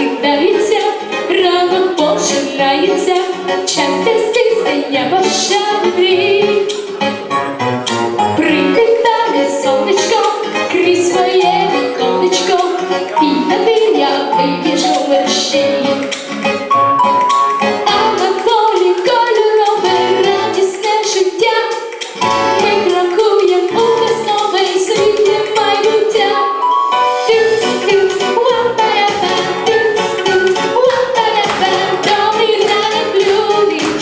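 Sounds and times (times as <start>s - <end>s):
boy singing into a microphone: 0.0s - 6.8s, 8.4s - 16.2s, 17.9s - 26.6s, 27.3s - 34.0s
band accompaniment: 5.5s - 8.8s, 14.6s - 18.8s, 22.0s - 25.7s.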